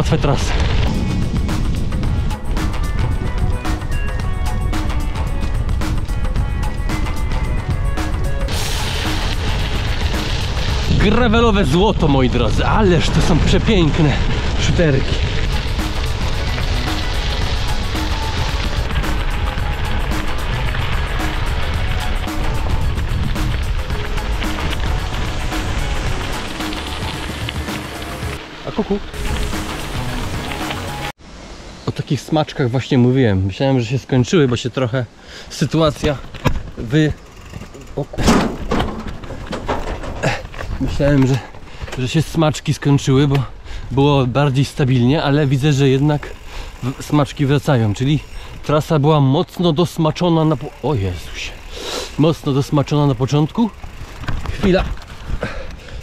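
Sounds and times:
wind rumble on microphone: 0:00.0 - 0:27.6, 0:53.6 - 0:56.0
bicycle tyres rolling on gravel: 0:00.0 - 0:31.1, 0:35.5 - 0:56.0
cyclist breathing hard: 0:35.1 - 0:35.5, 0:41.4 - 0:42.0, 0:43.5 - 0:44.0, 0:46.3 - 0:46.8, 0:48.3 - 0:48.7, 0:51.5 - 0:52.2, 0:54.4 - 0:56.0.

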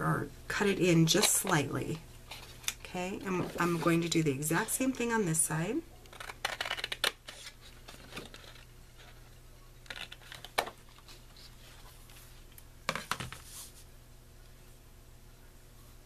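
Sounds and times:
scissors cutting cardstock: 0:06.1 - 0:07.5.

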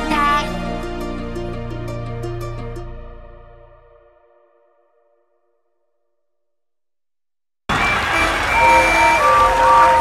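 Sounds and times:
steam engine whistles: 0:07.7 - 0:10.0.

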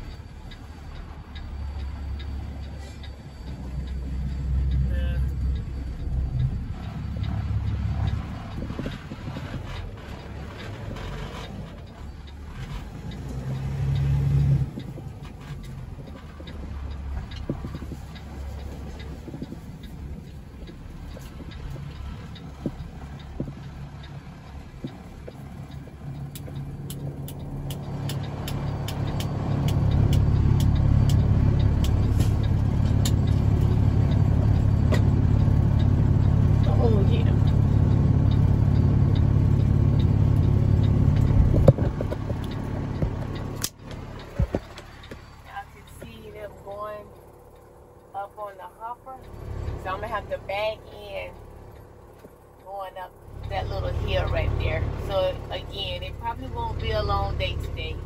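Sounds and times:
heavy diesel engine droning: 0:00.0 - 0:58.0
light ticking: 0:00.0 - 0:58.0.

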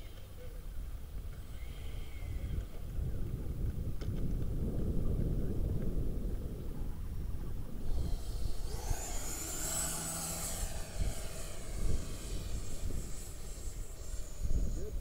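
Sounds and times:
model jet fans whining: 0:00.0 - 0:15.0
wind rumbling on microphone: 0:00.0 - 0:15.0.

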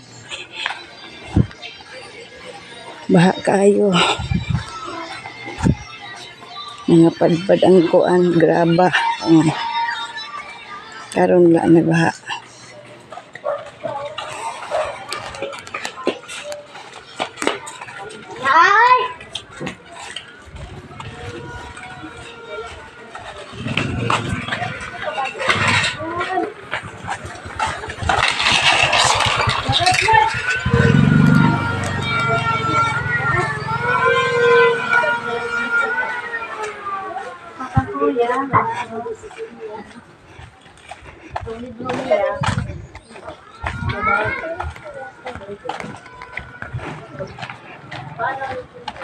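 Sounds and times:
motorcycle engine passing: 0:28.6 - 0:38.0.

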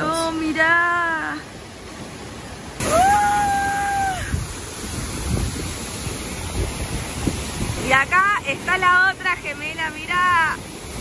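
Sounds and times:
waterfall onto rocks: 0:00.0 - 0:11.0
wind buffeting microphone: 0:03.9 - 0:08.0.

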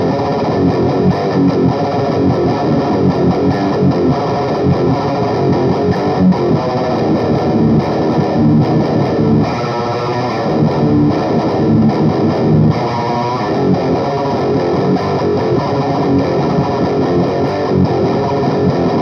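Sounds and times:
distorted electric guitar riffs: 0:00.0 - 0:19.0.

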